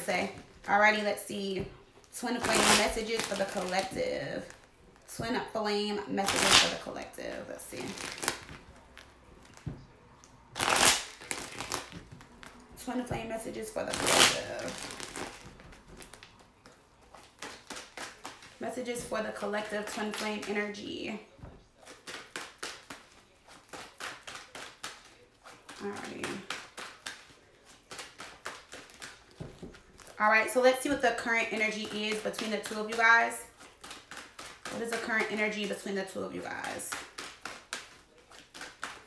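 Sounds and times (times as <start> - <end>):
cards riffle shuffle: 7.8 - 12.6, 13.8 - 20.6, 21.7 - 30.2, 30.8 - 39.0
cards clicking: 21.8 - 29.4.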